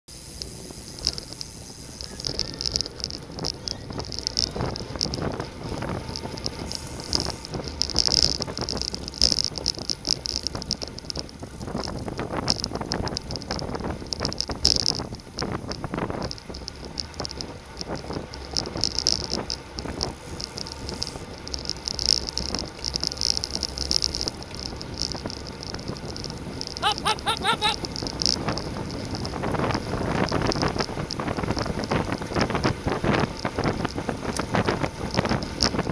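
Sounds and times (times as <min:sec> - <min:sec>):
bicycle rattles and clicks: 0:00.1 - 0:35.9
tyre and road noise: 0:00.1 - 0:35.9
wind rushing over microphone: 0:00.3 - 0:35.9.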